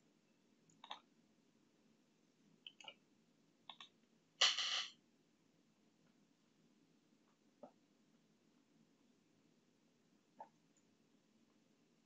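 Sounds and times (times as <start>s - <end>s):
computer mouse clicking: 0.7s - 1.1s, 3.7s - 4.0s.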